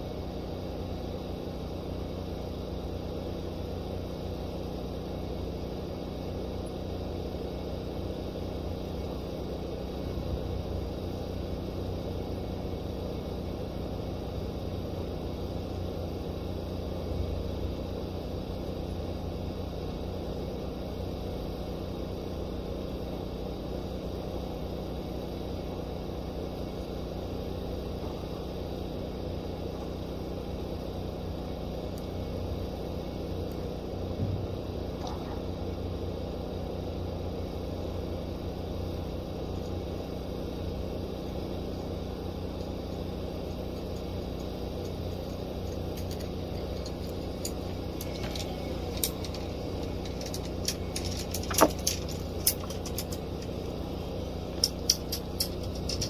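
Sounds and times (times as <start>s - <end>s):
low mechanical rumble and hum: 0.0s - 56.0s.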